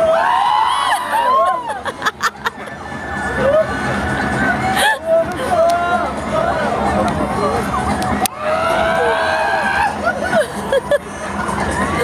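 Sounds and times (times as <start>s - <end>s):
people screaming: 0.0s - 2.0s, 3.0s - 10.8s.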